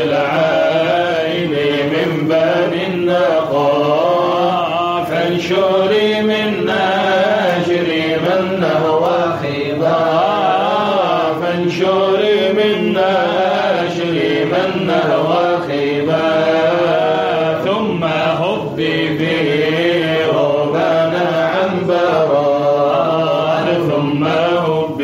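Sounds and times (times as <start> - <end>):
group of voices chanting: 0.0 - 25.0.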